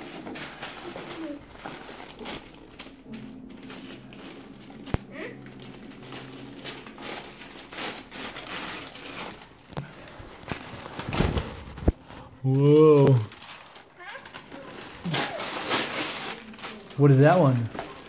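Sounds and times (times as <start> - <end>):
wrapping paper crinkling and tearing: 0.0 - 18.0.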